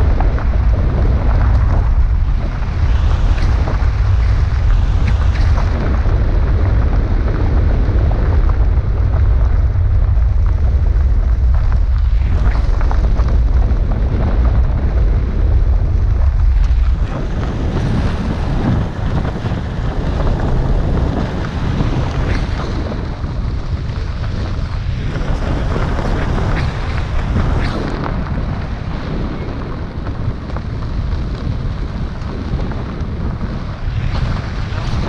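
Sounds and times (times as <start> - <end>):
gravel road noise: 0.0 - 35.0
wind buffeting microphone: 0.0 - 35.0.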